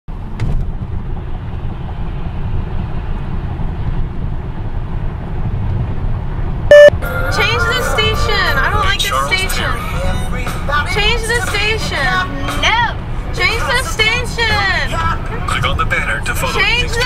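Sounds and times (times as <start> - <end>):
road and engine rumble: 0.1 - 17.0
loud short beep: 6.7 - 7.0.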